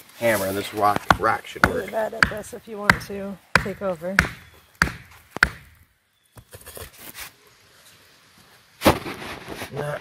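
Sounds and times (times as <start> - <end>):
rock knocking wooden stake: 0.9 - 6.5.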